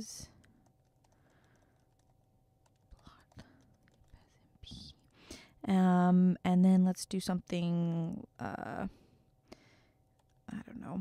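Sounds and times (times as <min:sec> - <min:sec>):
keyboard typing: 0:00.3 - 0:05.3, 0:10.1 - 0:10.5.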